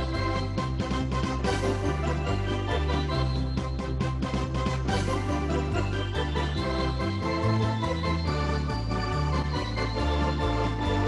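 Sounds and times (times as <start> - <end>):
home organ playing chords: 0.0 - 11.0
organ bass line: 0.0 - 11.0.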